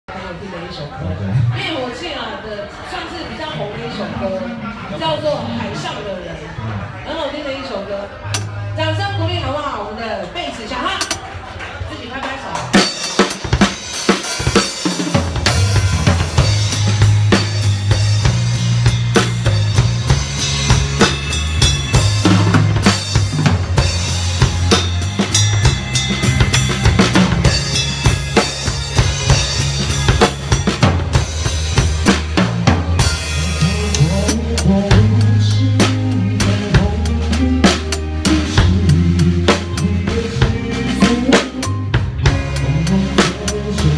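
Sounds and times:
live rock band playing: 12.6s - 43.9s
drum kit snare kick and cymbals: 12.7s - 43.9s.

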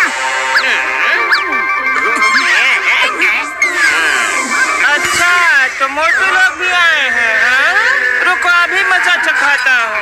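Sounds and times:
background music: 0.0s - 10.0s
cartoon character voices: 0.6s - 10.0s.

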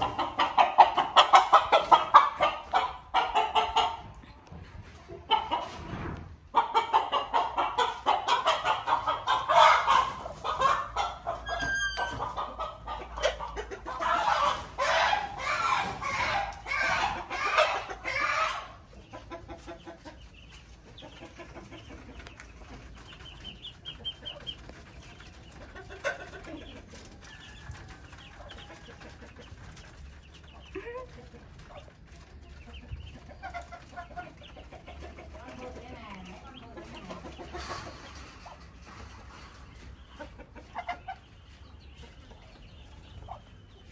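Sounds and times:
chickens clucking and cackling: 0.0s - 43.9s.

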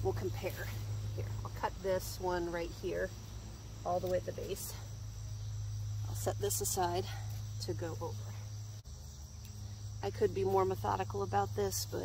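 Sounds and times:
crickets and insects chirping: 0.0s - 12.0s
low steady hum: 0.0s - 12.0s.

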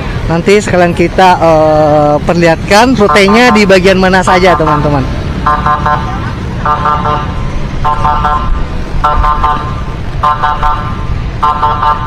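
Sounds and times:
motorbike and car traffic rumble: 0.0s - 12.0s.

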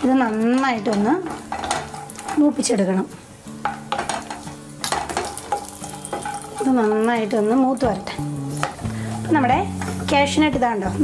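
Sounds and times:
spoon scraping a pan: 0.0s - 10.5s
nuts sizzling in a frying pan: 0.0s - 11.0s.

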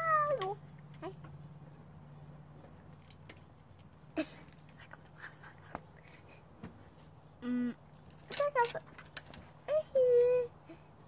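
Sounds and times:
boy wailing: 0.0s - 0.5s.

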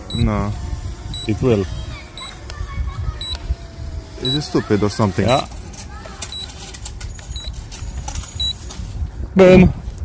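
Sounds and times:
short high electronic beeps: 0.0s - 0.3s
wind rumbling on microphone: 0.0s - 10.0s.

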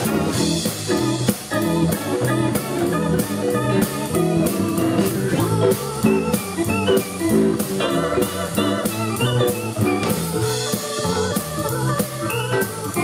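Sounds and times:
bass and drums beat: 0.0s - 13.0s
electric guitar: 0.0s - 13.0s
organ keyboard lead: 0.0s - 13.0s.

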